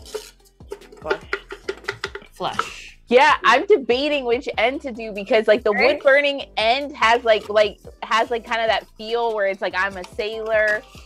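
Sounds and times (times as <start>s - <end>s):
cardboard tubes knocking and tapping: 0.8s - 2.7s.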